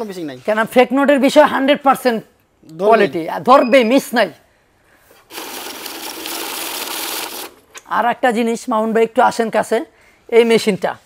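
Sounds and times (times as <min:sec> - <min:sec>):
bill counting machine whirring: 0:05.2 - 0:07.8.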